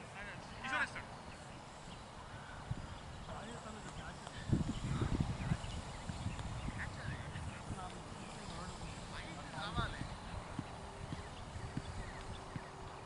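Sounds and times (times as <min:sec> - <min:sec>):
distant voices calling: 0:00.0 - 0:13.0.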